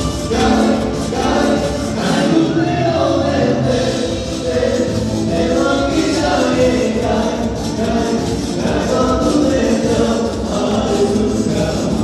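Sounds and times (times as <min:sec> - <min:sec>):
live band music: 0:00.0 - 0:12.0
person singing: 0:00.0 - 0:12.0.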